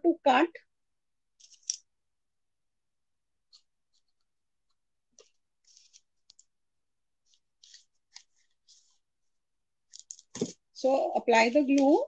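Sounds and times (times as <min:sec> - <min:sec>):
paper rustling: 0:01.4 - 0:01.9, 0:03.5 - 0:06.6, 0:07.2 - 0:10.7.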